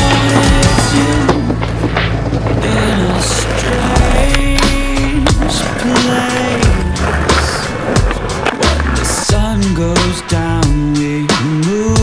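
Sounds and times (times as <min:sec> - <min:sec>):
music track: 0:00.0 - 0:12.0
skateboard clacking: 0:00.0 - 0:12.0
skateboard wheels rolling on pavement: 0:00.0 - 0:12.0.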